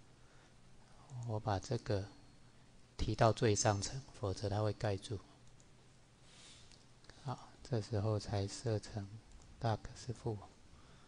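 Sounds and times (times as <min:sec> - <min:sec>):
low room hiss: 0:00.0 - 0:11.0
man speaking: 0:01.1 - 0:02.2, 0:03.0 - 0:05.3, 0:07.2 - 0:10.5
computer mouse clicks: 0:05.4 - 0:05.7, 0:09.3 - 0:09.5.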